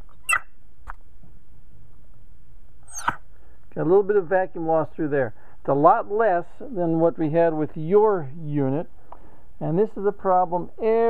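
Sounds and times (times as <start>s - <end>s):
brief squeaks: 0.0s - 0.5s, 2.9s - 3.2s.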